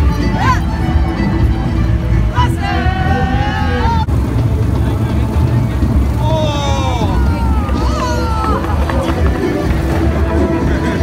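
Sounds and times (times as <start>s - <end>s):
voices singing and calling out: 2.2s - 4.1s
loud low rumble: 2.5s - 10.8s.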